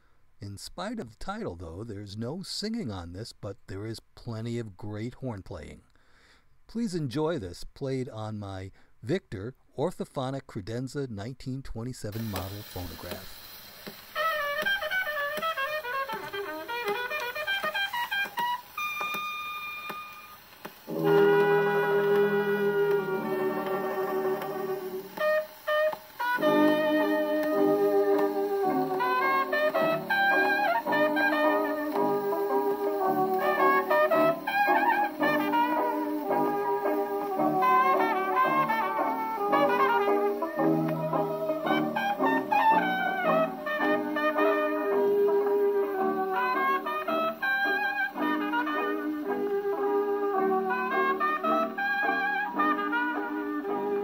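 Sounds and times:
jazz band record on phonograph: 0:06.8 - 0:54.0
horns holding a chord: 0:12.2 - 0:54.0.

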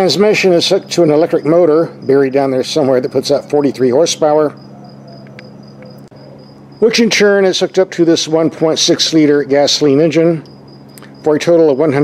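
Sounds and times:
insect chirping trill: 0:00.0 - 0:12.0.

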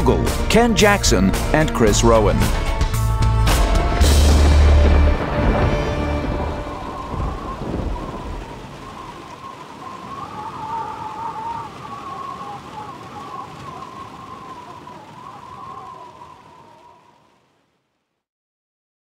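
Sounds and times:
rain-like hiss: 0:00.0 - 0:18.3
low rumble: 0:02.2 - 0:09.7
wavering whistle-like tone: 0:05.8 - 0:17.2.

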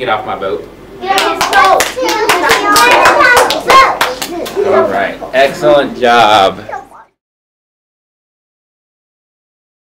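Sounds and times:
children's voices calling out: 0:01.0 - 0:05.0
children clapping: 0:01.1 - 0:04.6.

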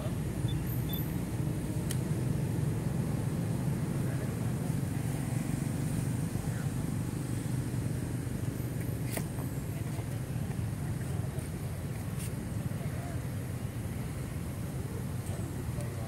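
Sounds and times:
low outdoor rumble: 0:00.0 - 0:16.0.

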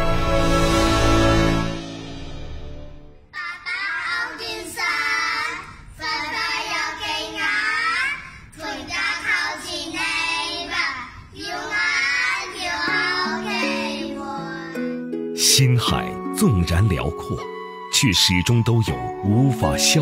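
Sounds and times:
children singing folk-style song: 0:03.4 - 0:14.9
instrumental backing: 0:12.8 - 0:20.0.

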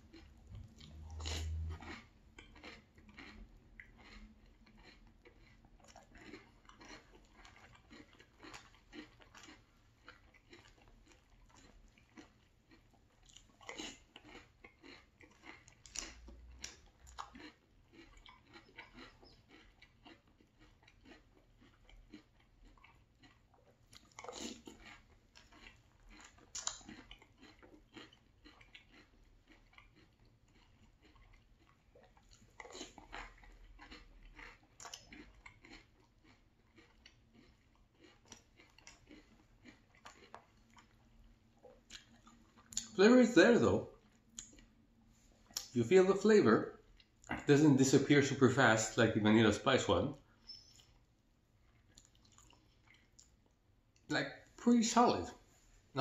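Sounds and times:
cereal crunching while chewing: 0:00.0 - 0:56.0.

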